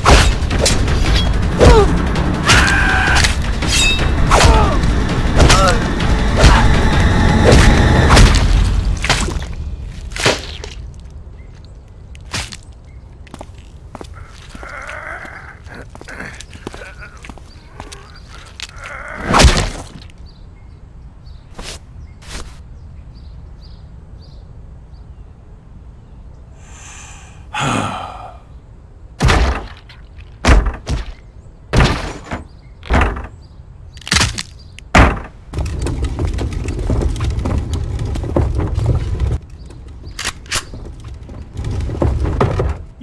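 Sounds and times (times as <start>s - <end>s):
man moaning in pain: 14.2s - 17.3s, 27.2s - 28.5s.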